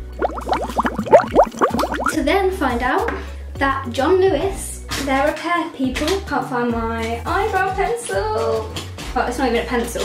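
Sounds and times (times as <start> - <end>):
liquid gurgling from sipping: 0.0 - 2.2.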